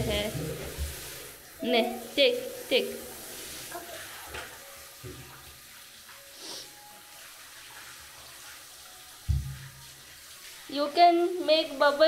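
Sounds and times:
water spraying from shower head: 0:00.0 - 0:12.0
dull thump: 0:09.3 - 0:09.6.

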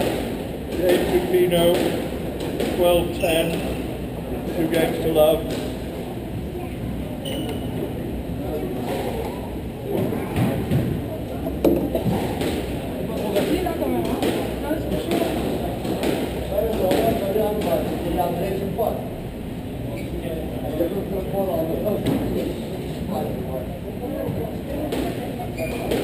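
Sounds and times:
squash ball knocks: 0:00.0 - 0:03.7, 0:09.9 - 0:17.9, 0:24.3 - 0:26.0
murmur of voices: 0:00.0 - 0:26.0.

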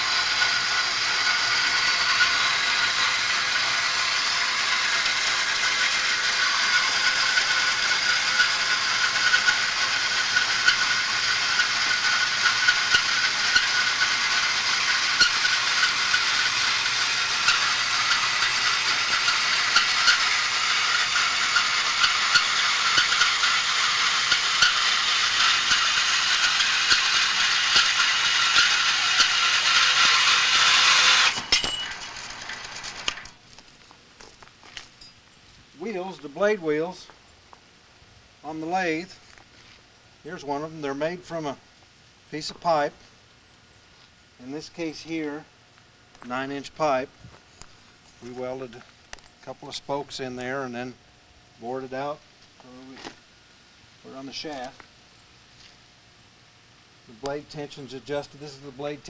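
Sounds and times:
bandsaw whirring: 0:00.0 - 0:33.4.

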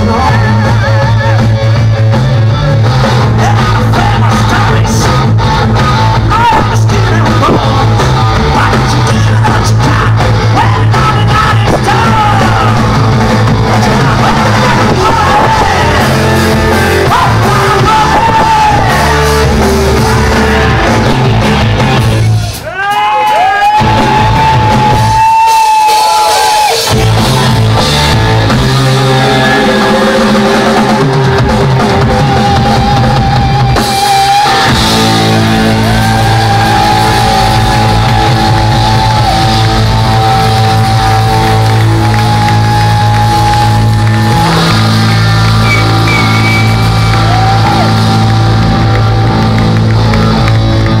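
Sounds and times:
electric guitars sustained notes: 0:00.0 - 0:22.5, 0:26.8 - 0:51.0
crowd noise: 0:00.0 - 0:51.0
live rock band: 0:00.0 - 0:51.0.

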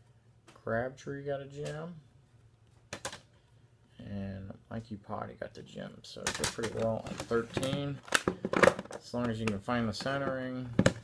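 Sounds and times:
plastic card cases clacking: 0:06.2 - 0:11.0.

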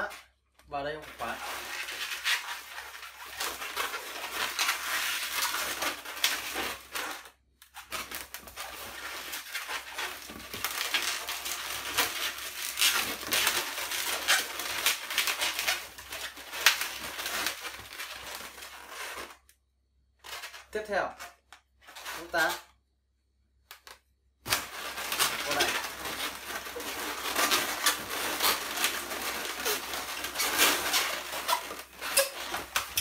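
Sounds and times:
balloons squeaking and crackling: 0:00.0 - 0:19.5, 0:20.2 - 0:22.7, 0:23.7 - 0:33.0.

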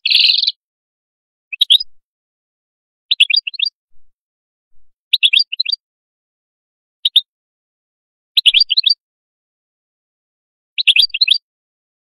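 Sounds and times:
goldfinch twittering: 0:00.1 - 0:00.6, 0:01.5 - 0:02.0, 0:03.1 - 0:04.1, 0:04.7 - 0:05.8, 0:08.4 - 0:09.0, 0:10.8 - 0:11.4.

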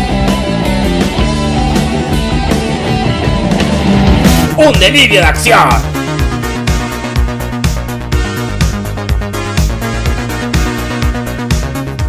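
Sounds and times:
electric guitar playing: 0:00.0 - 0:07.4
heavy metal music: 0:00.0 - 0:12.0.

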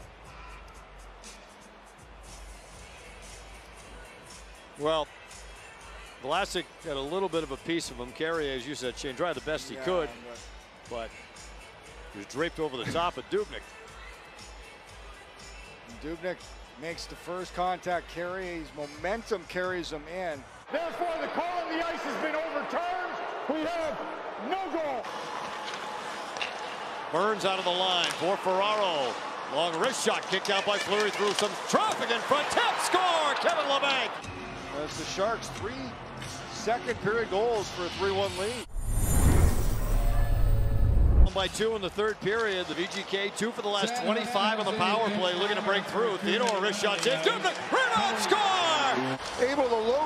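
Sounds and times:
faint background music: 0:00.0 - 0:25.0, 0:25.9 - 0:38.7.

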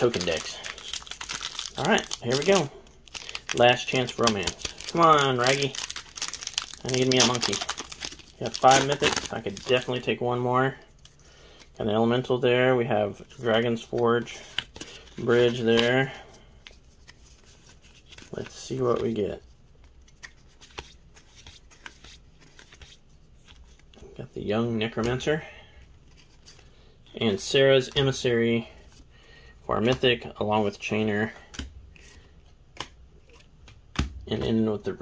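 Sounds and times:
cards rustling: 0:00.0 - 0:11.8, 0:13.1 - 0:24.0, 0:26.0 - 0:26.8.

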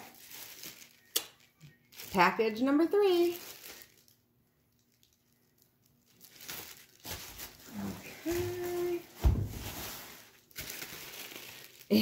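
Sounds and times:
plastic wrapping crinkling: 0:00.0 - 0:12.0
person humming: 0:07.7 - 0:09.1
low thump: 0:09.2 - 0:09.6.

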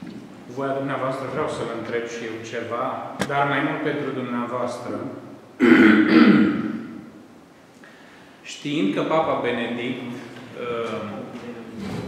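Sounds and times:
man clearing his throat: 0:05.6 - 0:06.9.

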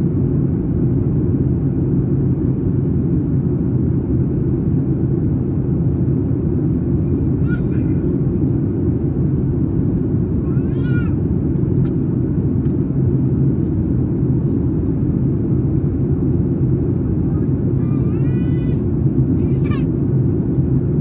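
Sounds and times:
airliner cabin engine noise: 0:00.0 - 0:21.0.

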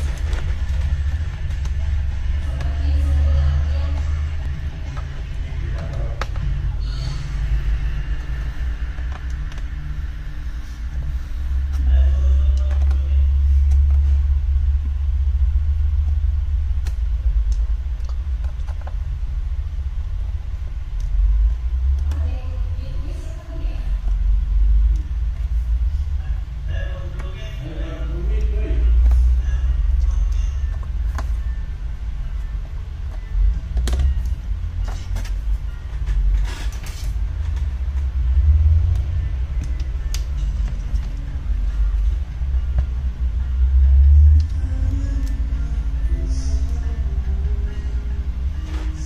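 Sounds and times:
steady low rumble: 0:00.0 - 0:49.0.

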